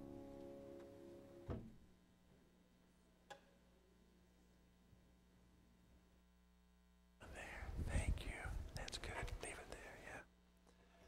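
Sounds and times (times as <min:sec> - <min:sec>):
people whispering: 0:07.2 - 0:10.3.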